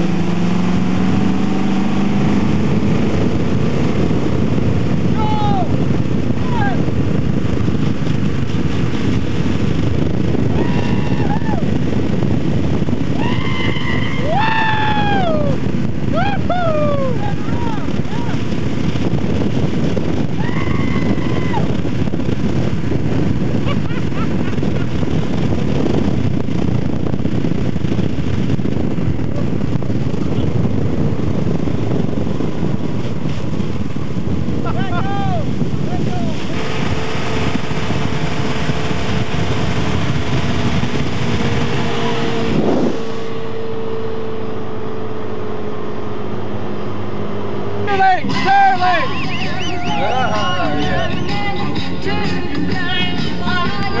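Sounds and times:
boat engine drone: 0:00.0 - 0:54.0
rush of wind and water spray: 0:00.7 - 0:44.3
people shouting: 0:13.2 - 0:15.6, 0:16.2 - 0:18.4, 0:20.4 - 0:21.7, 0:34.7 - 0:35.5, 0:47.9 - 0:51.3.

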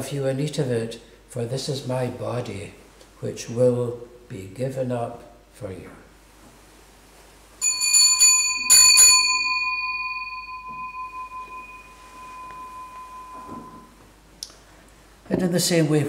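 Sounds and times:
altar bell ringing: 0:07.6 - 0:14.1.

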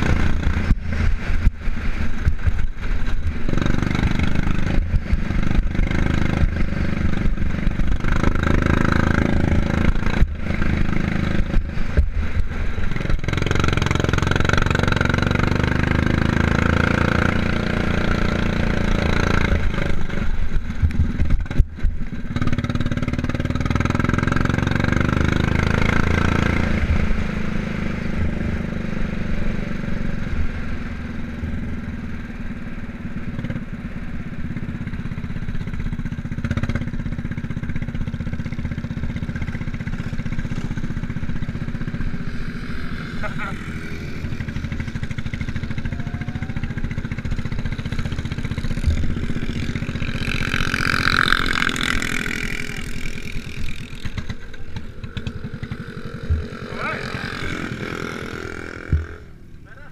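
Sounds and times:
motorcycle engine running hard: 0:00.0 - 0:59.9.

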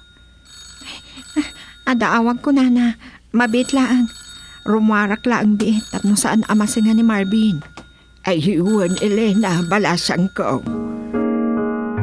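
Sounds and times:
person speaking: 0:00.8 - 0:10.8
thin high-pitched tones: 0:03.4 - 0:10.8.

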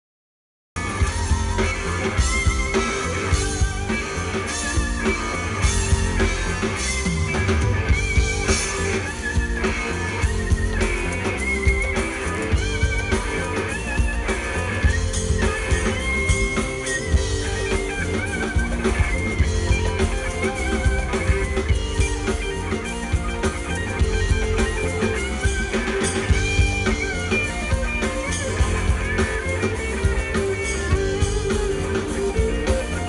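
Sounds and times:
bass guitar: 0:00.8 - 0:33.0
drum kit: 0:00.8 - 0:33.0
electric guitar bending notes: 0:00.8 - 0:33.0.

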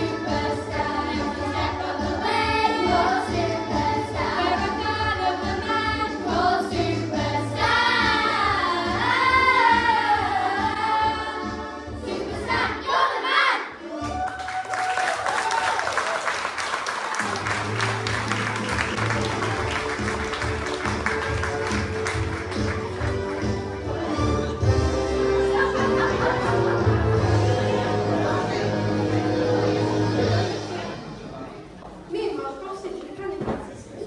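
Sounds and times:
backing music: 0:00.0 - 0:13.2, 0:16.5 - 0:31.7
children singing: 0:00.0 - 0:13.8
audience applause: 0:14.0 - 0:23.8.

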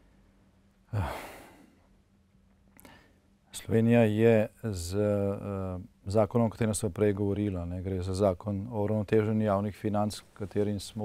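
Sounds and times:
man sighing: 0:00.9 - 0:01.8
man speaking: 0:03.6 - 0:11.0.

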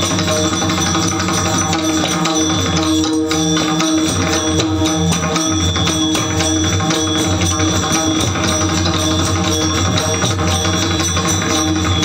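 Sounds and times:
brass hand cymbals ringing: 0:00.0 - 0:12.0
drum strokes: 0:00.0 - 0:12.0.

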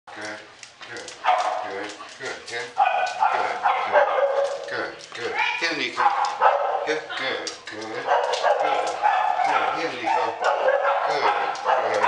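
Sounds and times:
dogs barking in hallway: 0:01.0 - 0:07.1, 0:08.0 - 0:12.0.

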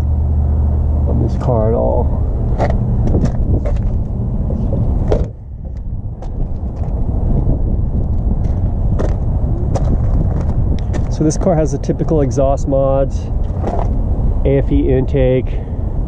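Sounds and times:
car door shutting: 0:02.6 - 0:05.4.

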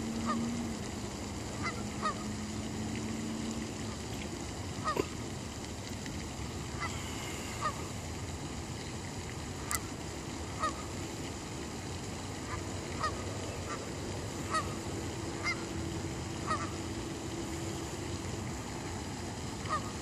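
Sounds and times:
background hiss: 0:00.0 - 0:20.0
geese honking: 0:00.2 - 0:00.6, 0:01.4 - 0:02.4, 0:06.7 - 0:07.0, 0:09.6 - 0:11.0, 0:12.4 - 0:17.0, 0:19.6 - 0:20.0.

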